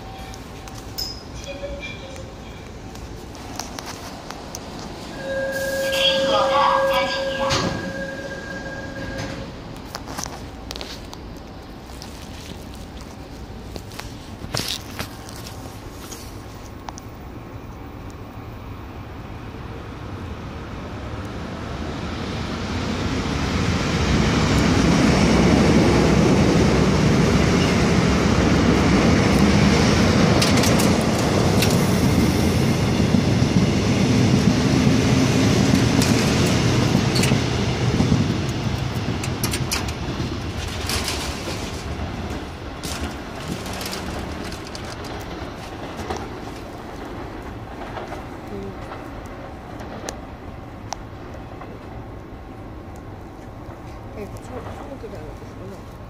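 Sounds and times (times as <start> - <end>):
electric train passing: 0.0 - 14.1, 15.1 - 56.0.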